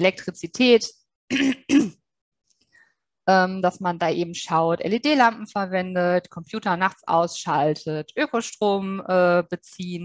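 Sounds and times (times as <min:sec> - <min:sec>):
woman clearing her throat: 0:01.3 - 0:02.0.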